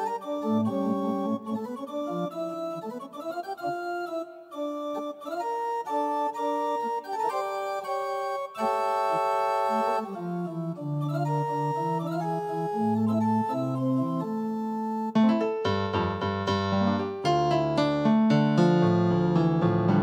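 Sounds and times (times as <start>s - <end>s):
electronic organ chords: 0.0s - 20.0s.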